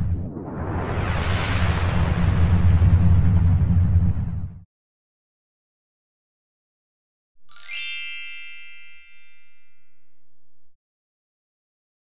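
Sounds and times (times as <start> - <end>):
bright shimmering chime: 7.5 - 10.0.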